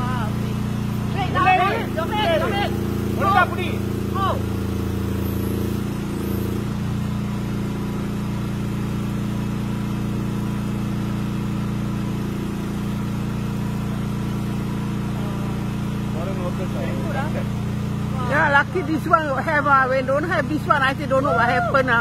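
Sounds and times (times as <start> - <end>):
boom lift engine running: 0.0 - 22.0.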